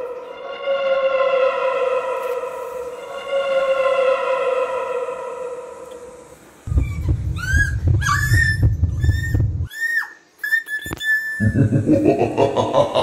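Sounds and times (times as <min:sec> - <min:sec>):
eerie held tone: 0:00.0 - 0:09.7
high screeching cries: 0:00.0 - 0:11.5
low rumble: 0:02.9 - 0:09.7.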